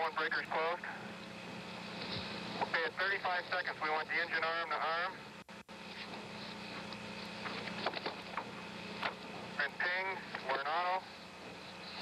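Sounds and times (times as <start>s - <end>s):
radio channel hiss and hum: 0.0s - 12.0s.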